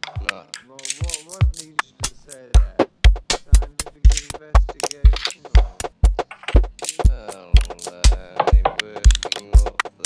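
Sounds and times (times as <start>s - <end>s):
glitchy electronic music: 0.0s - 10.0s
kick drum thumps: 1.4s - 9.8s.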